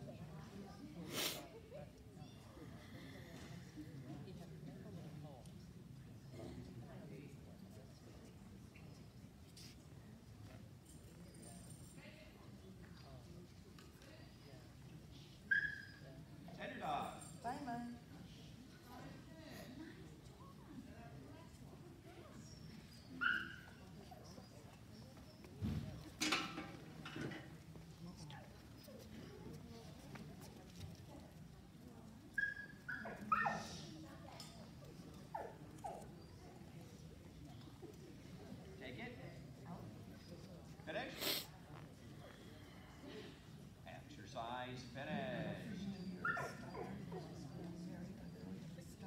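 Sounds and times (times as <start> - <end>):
dog whining: 46.0 - 47.5
dog yelping: 46.2 - 47.0.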